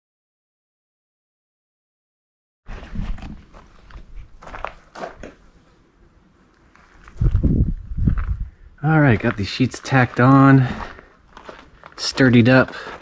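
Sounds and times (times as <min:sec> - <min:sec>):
footsteps on gravel: 0:02.7 - 0:05.4, 0:06.6 - 0:13.0
heavy low thuds: 0:07.2 - 0:09.3.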